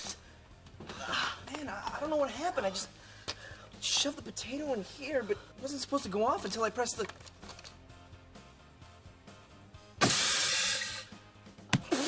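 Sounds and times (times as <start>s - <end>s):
faint music: 0.0s - 12.0s
potato cannon hissing blast: 10.0s - 11.1s.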